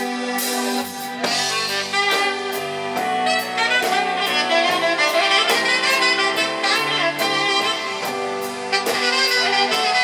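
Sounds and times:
live band playing: 0.0s - 10.0s
saxophone: 0.0s - 10.0s.

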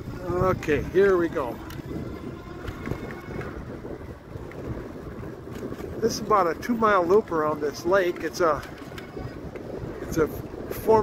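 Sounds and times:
bicycle rolling on pavement: 0.0s - 11.0s
wind on microphone: 0.0s - 11.0s.

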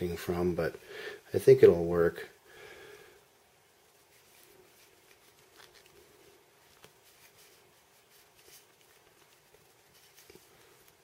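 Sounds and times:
faint ticks and rubbing: 3.8s - 11.0s.

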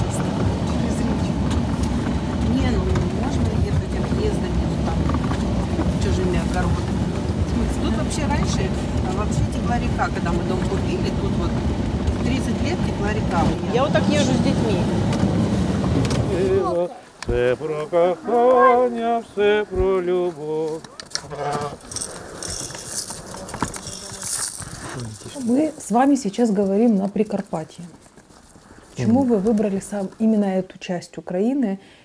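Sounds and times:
car cabin rumble: 0.0s - 16.6s.

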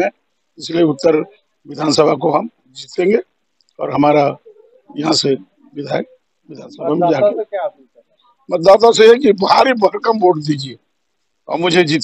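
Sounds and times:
man speaking: 0.0s - 10.8s, 11.4s - 12.0s.

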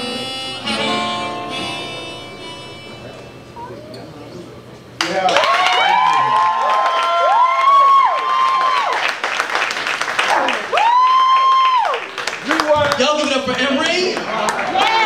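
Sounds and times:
audience clapping: 5.0s - 15.0s
people whooping: 5.2s - 9.2s, 10.2s - 12.2s.

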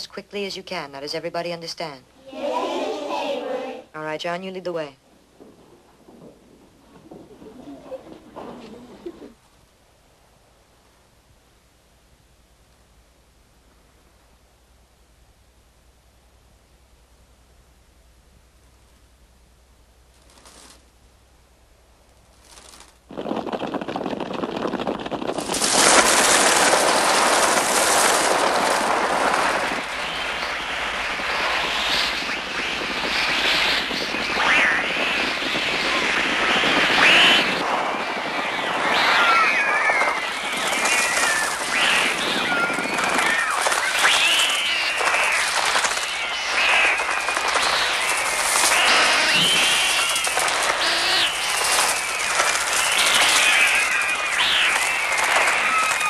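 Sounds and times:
flapping wings rush: 5.3s - 9.4s, 20.1s - 20.9s, 22.2s - 56.0s
electronic crow cries: 34.4s - 56.0s
children screaming: 35.8s - 56.0s.

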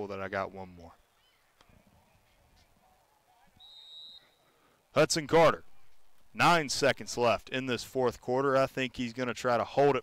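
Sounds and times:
faint field ambience: 0.0s - 10.0s.

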